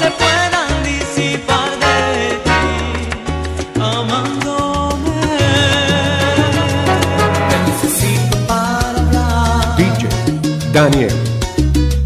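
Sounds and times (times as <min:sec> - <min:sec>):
bass-boosted salsa music: 0:00.0 - 0:12.0.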